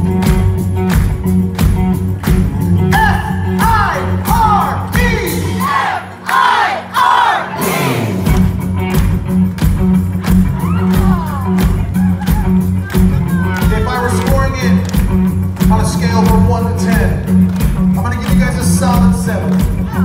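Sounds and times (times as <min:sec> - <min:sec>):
live rock band playing: 0:00.0 - 0:06.2, 0:06.8 - 0:20.0
crowd shouting and whooping: 0:03.6 - 0:08.4, 0:10.4 - 0:14.1.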